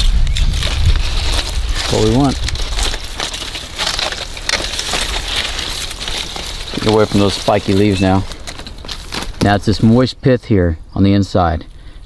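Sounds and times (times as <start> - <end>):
plant stalk crackling and snapping: 0.0 - 9.8.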